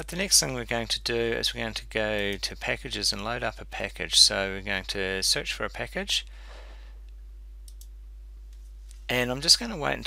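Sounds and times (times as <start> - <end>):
low electrical hum: 0.0 - 10.0
computer mouse clicks: 7.6 - 7.9.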